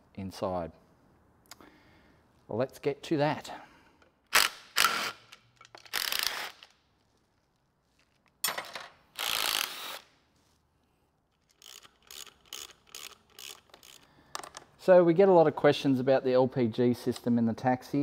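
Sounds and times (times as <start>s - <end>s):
hand ratchet clicking: 4.3s - 6.7s, 9.2s - 10.1s, 11.4s - 14.6s.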